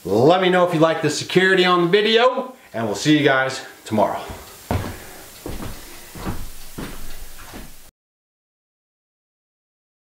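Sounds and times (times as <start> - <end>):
heavy footsteps on wooden floor: 4.1 - 7.9.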